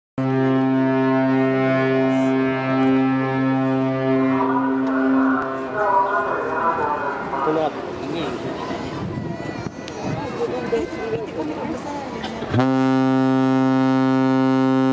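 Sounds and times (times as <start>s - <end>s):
ship's horn blast: 0.2s - 6.7s, 12.5s - 14.9s
people's voices: 1.3s - 12.6s.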